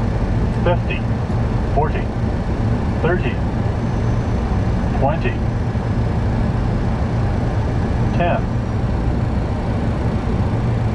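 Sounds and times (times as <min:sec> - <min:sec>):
cockpit airflow and engine hum: 0:00.0 - 0:10.9.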